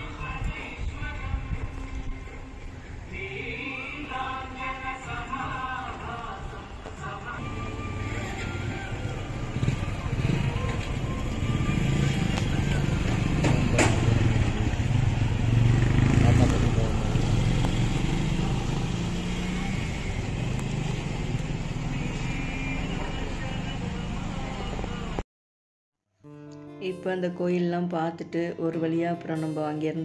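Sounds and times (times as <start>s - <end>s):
motor traffic rumble: 0.0s - 25.2s
voices: 3.1s - 25.2s.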